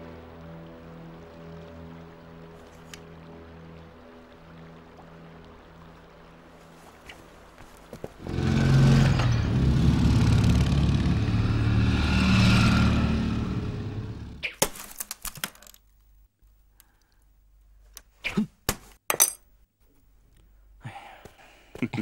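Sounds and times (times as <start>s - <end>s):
vehicle engine running loudly: 8.2s - 14.4s.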